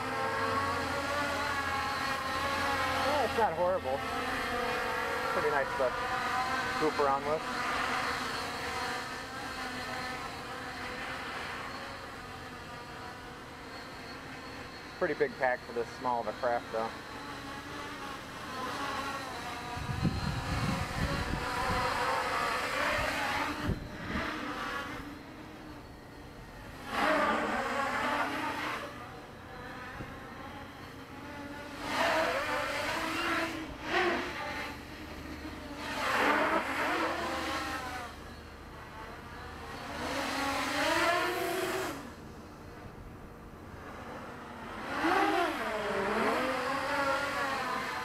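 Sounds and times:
drone motors whining: 0.0 - 48.0.

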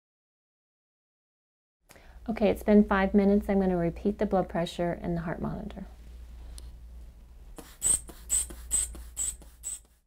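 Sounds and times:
blood pressure bulb hissing squeezes: 7.6 - 10.0.

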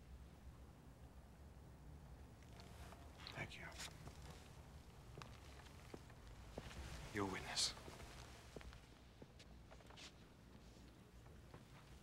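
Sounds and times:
faint breathy whisper: 2.6 - 4.1, 7.1 - 7.8.

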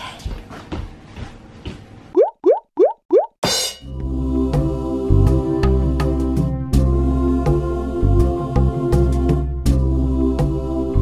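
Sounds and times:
rising bloop sound effect: 2.2 - 3.4
background music with light beat: 3.4 - 11.0.

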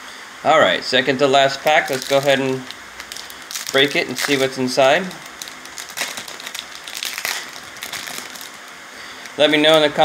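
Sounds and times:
plastic wrapper crinkling: 1.6 - 10.0
wrapper tearing open: 1.7 - 9.9.

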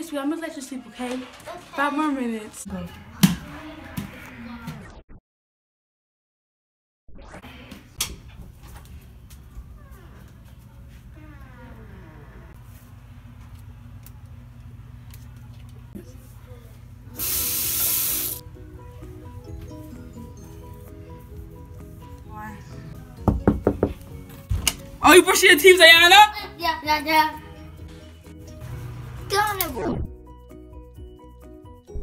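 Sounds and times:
background music: 18.2 - 32.0
knocks on door: 23.2 - 24.7.

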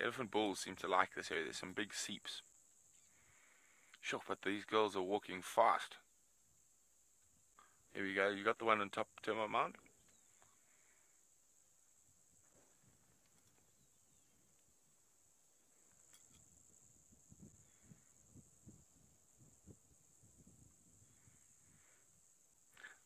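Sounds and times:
steady high-pitched hiss: 0.0 - 23.0.

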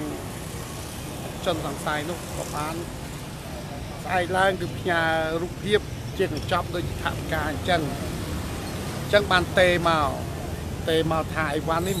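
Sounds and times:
man speaking: 0.0 - 0.2, 1.4 - 3.0, 3.6 - 8.2, 9.1 - 12.0.

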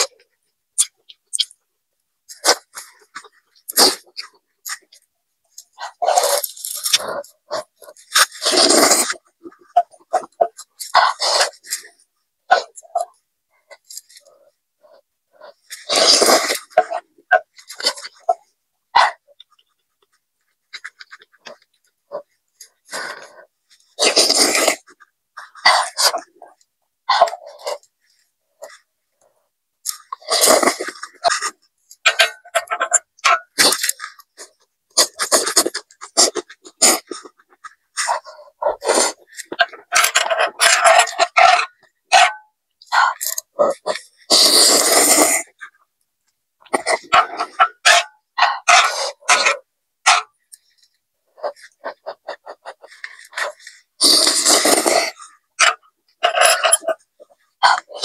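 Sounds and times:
open-mouth chewing: 2.3 - 28.8, 46.6 - 58.0
person slurping noodles: 3.7 - 4.3, 5.8 - 13.2, 15.4 - 18.4, 22.9 - 27.8, 29.9 - 37.4, 38.0 - 42.2, 42.9 - 45.6, 46.7 - 50.2, 51.4 - 57.0.

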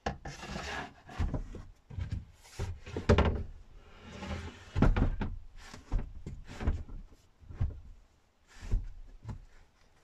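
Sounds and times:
cushions scraping on wooden frame: 0.2 - 3.2, 3.8 - 10.0.

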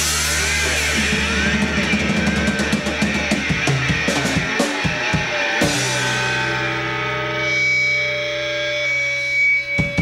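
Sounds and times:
distorted electric guitar chord ringing: 0.0 - 10.0
drums: 0.0 - 10.0.

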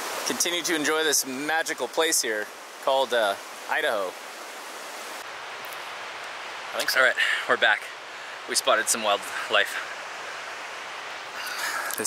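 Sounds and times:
fast-flowing river rushing: 0.0 - 12.0.

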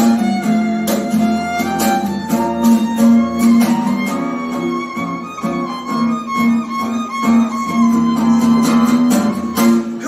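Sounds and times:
acoustic guitar strummed chords: 0.0 - 10.0
fiddle bowed melody: 0.0 - 10.0.

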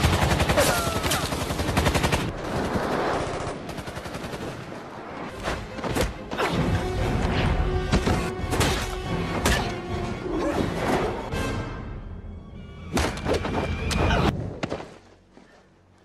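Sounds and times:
film music score: 0.0 - 16.0.

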